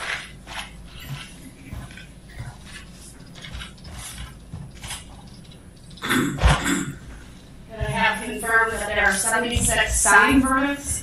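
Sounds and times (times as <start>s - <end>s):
paper rustling and shuffling: 0.0s - 5.6s.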